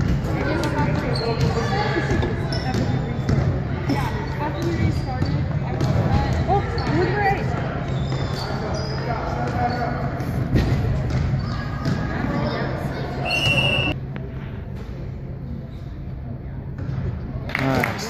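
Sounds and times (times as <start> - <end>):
voices of players and spectators: 0.0 - 18.0.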